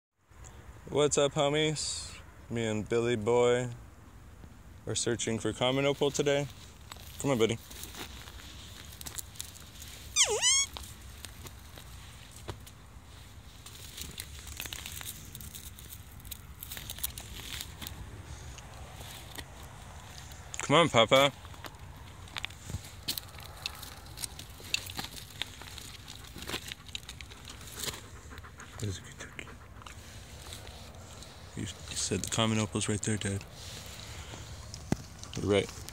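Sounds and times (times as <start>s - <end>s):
movement on gravel: 5.8s - 29.0s, 29.7s - 35.9s
dog whining: 10.1s - 10.8s
dog panting and sniffing: 22.5s - 32.8s.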